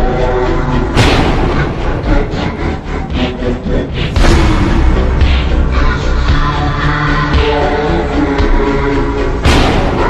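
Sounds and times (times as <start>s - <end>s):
music: 0.0s - 10.0s.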